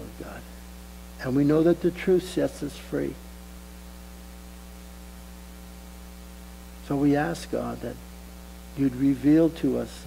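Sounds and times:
electrical mains hum: 0:00.0 - 0:10.0
faint hiss: 0:00.0 - 0:10.0.

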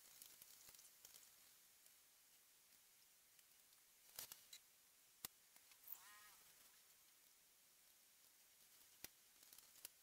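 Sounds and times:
faint clicks: 0:00.0 - 0:10.0.

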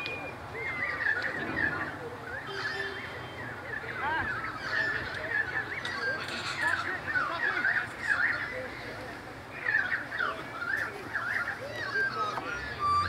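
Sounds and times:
distant shouts and calls: 0:00.0 - 0:13.0.

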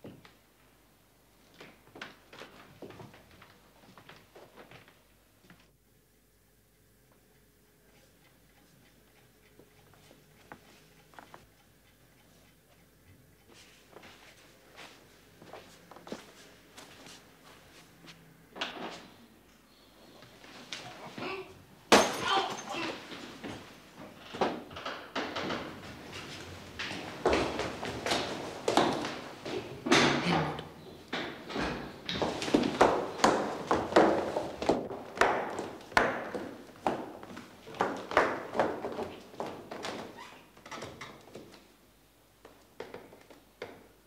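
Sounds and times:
footsteps on stairs: 0:09.5 - 0:18.2, 0:21.9 - 0:41.7.

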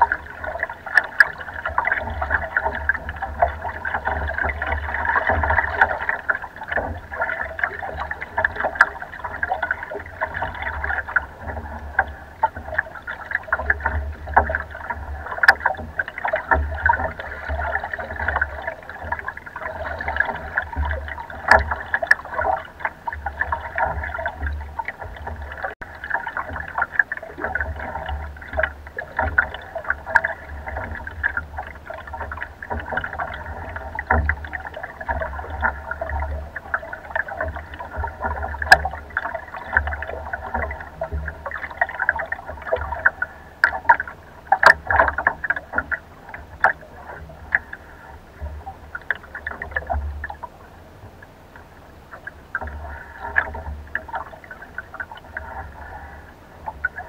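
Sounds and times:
water splashing against boat hull: 0:00.0 - 0:57.0.

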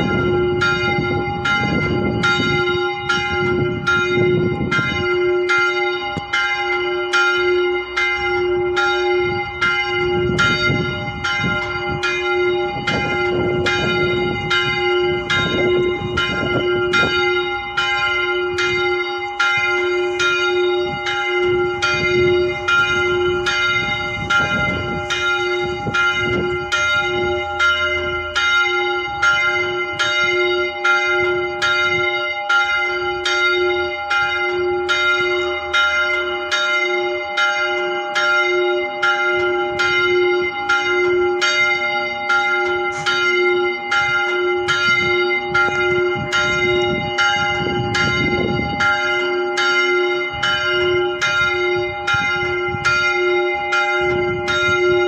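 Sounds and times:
church bell ringing: 0:00.0 - 0:55.0.

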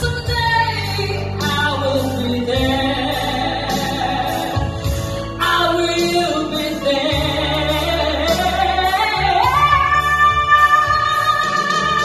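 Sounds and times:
backing music: 0:00.0 - 0:12.0
woman singing a rock ballad: 0:00.0 - 0:12.0.

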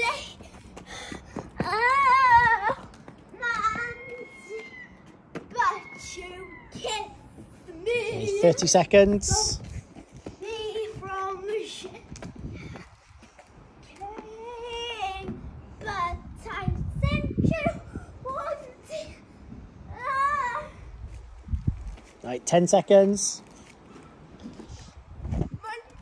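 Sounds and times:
child calling high-pitched: 0:03.4 - 0:08.7, 0:19.9 - 0:20.8.

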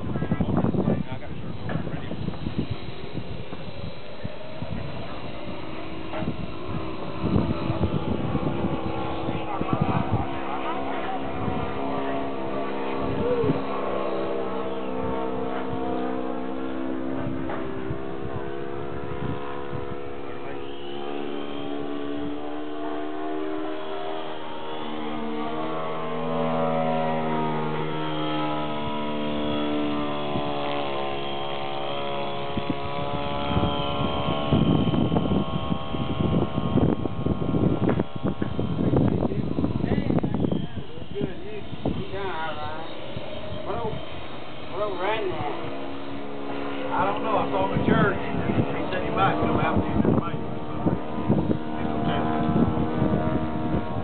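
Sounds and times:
model plane motor buzzing: 0:00.0 - 0:54.0
wind buffeting microphone: 0:00.0 - 0:54.0.

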